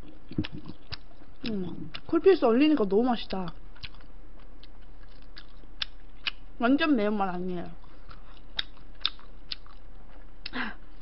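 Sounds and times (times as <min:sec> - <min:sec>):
person chewing food: 0:00.0 - 0:02.1, 0:03.3 - 0:06.5, 0:07.8 - 0:11.0
faint mouth smacks: 0:00.3 - 0:01.1
wet mouth clicks: 0:00.3 - 0:02.0.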